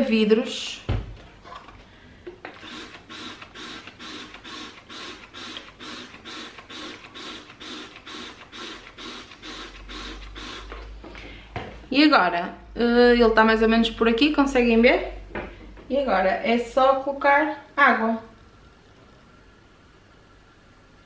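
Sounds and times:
spray bottle squirting: 2.7s - 10.8s.

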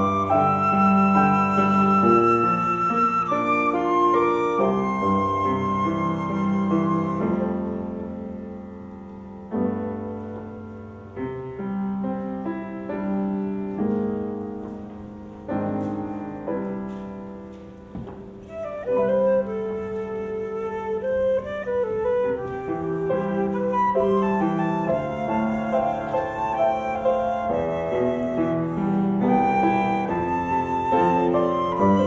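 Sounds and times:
flute melody: 0.0s - 32.0s
piano chords: 0.0s - 32.0s.

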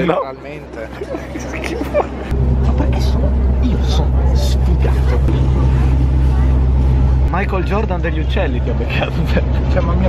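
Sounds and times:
faint voices: 0.0s - 9.7s
ferry engine drone: 0.0s - 10.0s.

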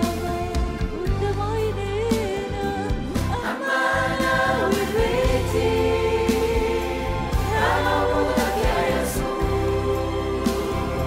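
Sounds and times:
amplified backing music: 0.0s - 11.0s
voices singing together: 3.2s - 11.0s.

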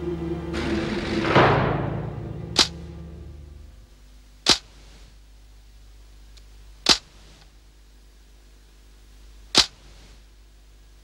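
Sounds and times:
low musical chord: 0.0s - 4.1s
camera shutter snaps: 4.4s - 4.7s, 9.6s - 9.8s.

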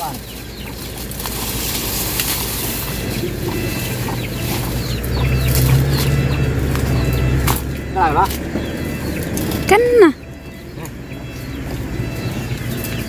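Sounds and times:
sugarcane stalks rustling: 0.0s - 10.0s
chicken clucking: 0.0s - 13.0s.

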